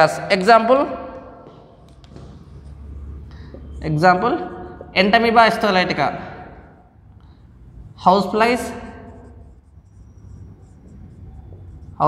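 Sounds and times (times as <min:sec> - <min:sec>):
steady low hum: 0:00.0 - 0:12.0
marker scratching on whiteboard: 0:07.7 - 0:12.0
thin marker squeak: 0:08.8 - 0:12.0.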